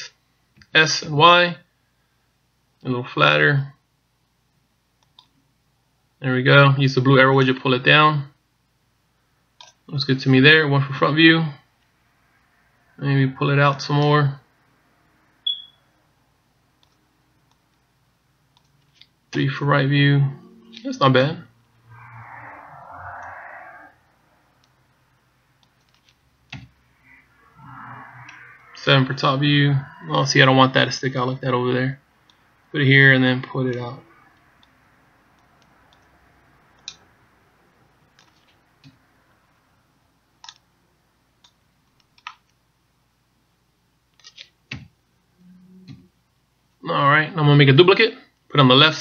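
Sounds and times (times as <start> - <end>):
faint low hum: 0.0 - 49.0
computer mouse clicks: 5.0 - 5.3, 25.6 - 26.7, 36.8 - 37.0, 40.4 - 40.6, 41.4 - 42.6.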